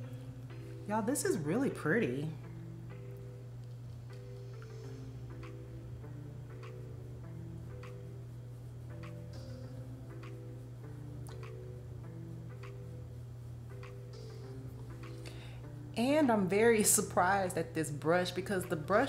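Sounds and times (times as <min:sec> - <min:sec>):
soft background music: 0:00.0 - 0:19.0.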